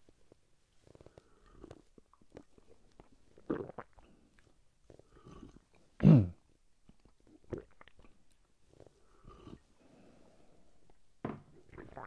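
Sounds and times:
gulp: 3.4 - 4.1, 5.2 - 6.4, 7.4 - 8.2, 11.7 - 12.0.

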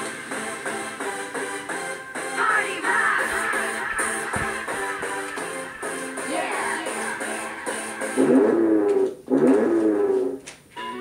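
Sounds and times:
high voice singing drawn-out notes: 6.2 - 8.6.

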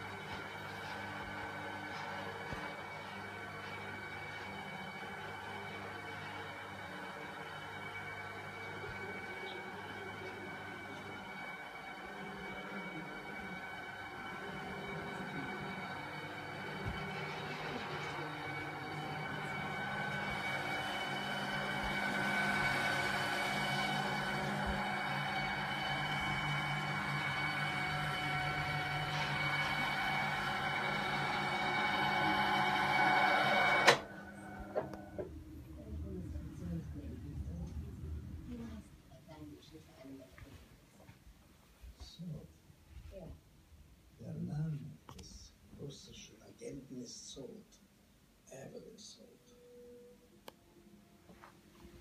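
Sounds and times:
electric motor running: 0.0 - 38.8
motor stopping click: 16.7 - 35.4.

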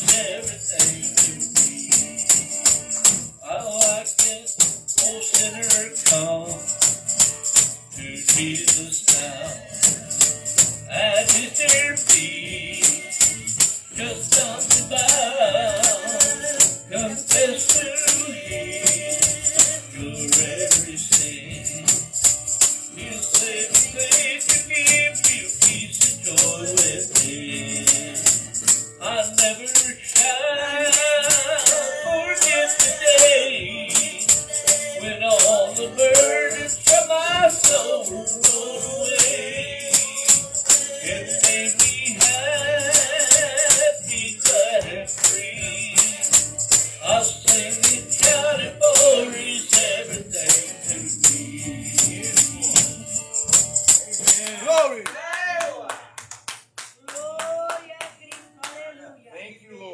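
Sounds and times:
man singing: 0.0 - 10.2, 10.8 - 55.0
drum kit beat: 0.0 - 55.0
acoustic guitar: 0.0 - 59.9.

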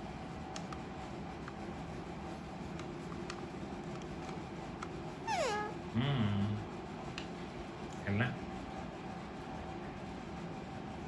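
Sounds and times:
low voice-like sound: 5.9 - 6.7.

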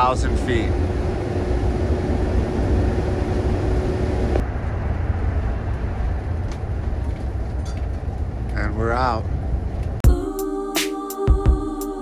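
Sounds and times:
road and engine rumble: 0.0 - 10.1.

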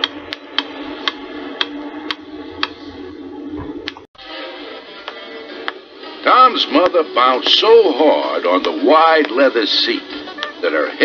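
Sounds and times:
low hum: 0.0 - 6.3.

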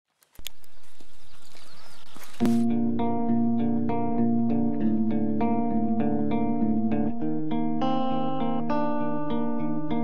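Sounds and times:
outdoor background noise: 0.1 - 10.0
hooves thudding on grass: 0.4 - 2.7.

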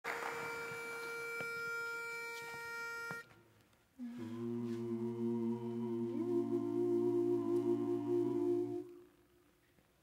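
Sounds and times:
pitch pipe steady note: 0.1 - 3.4, 4.0 - 9.0.

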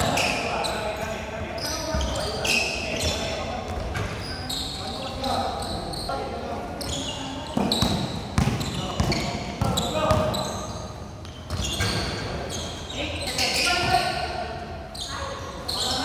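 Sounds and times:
sneaker squeaks: 0.0 - 16.0
basketball bouncing on hard court: 7.6 - 10.4.

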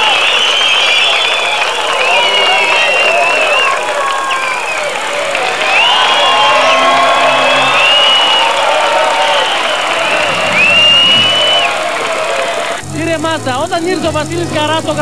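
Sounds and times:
shrill whistles: 0.0 - 12.8
crowd cheering: 0.0 - 12.9
music playing: 5.7 - 9.0.

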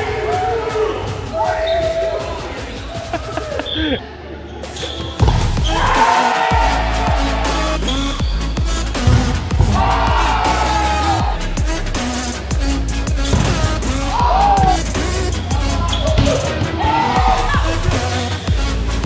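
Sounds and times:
music with heavy bass: 0.0 - 4.0, 5.2 - 19.0
players' voices: 0.0 - 19.0
volleyball hits: 5.1 - 6.1, 9.0 - 10.6, 13.2 - 15.0, 15.7 - 17.0.

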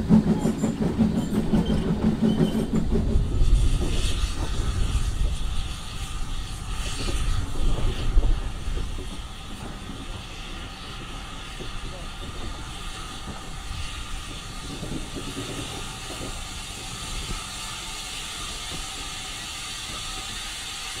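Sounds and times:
train wheels rumbling: 0.0 - 21.0.

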